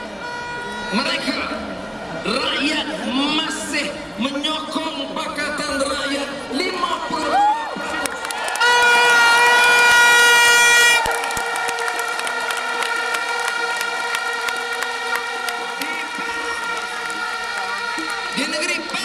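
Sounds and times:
handheld horns blowing: 0.0 - 1.3, 8.5 - 19.0
crowd noise: 0.0 - 19.0.

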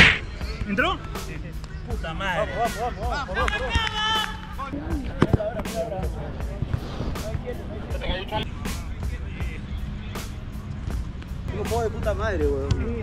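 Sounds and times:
music: 0.0 - 13.0.

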